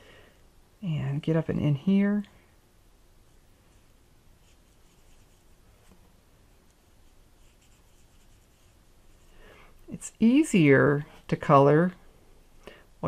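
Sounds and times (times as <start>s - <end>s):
marker scratching on cardstock: 4.4s - 5.4s, 7.4s - 8.7s.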